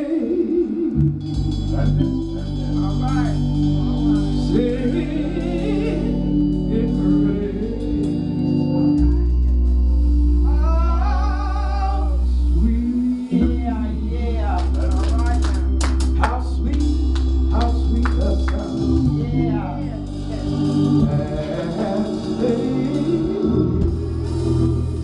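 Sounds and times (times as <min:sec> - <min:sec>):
sustained low instrumental chords: 0:00.0 - 0:25.0
woman singing gospel song: 0:18.1 - 0:24.0.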